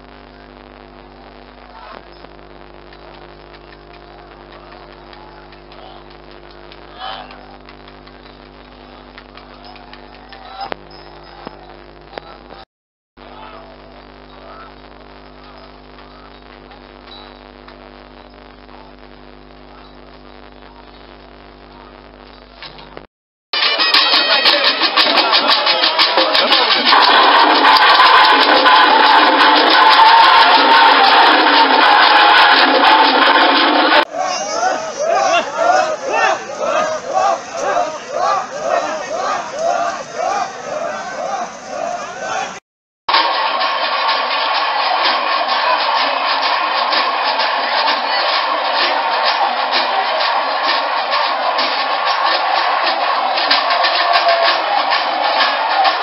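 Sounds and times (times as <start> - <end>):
crowd noise: 0.0 - 12.6, 13.2 - 56.0
loud dense music: 23.6 - 40.0
drums and cymbals fast rhythm: 23.6 - 56.0.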